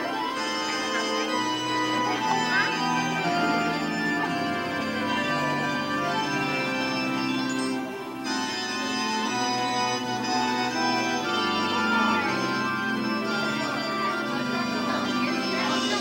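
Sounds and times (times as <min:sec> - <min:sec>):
organ music sustained chords: 0:00.0 - 0:16.0.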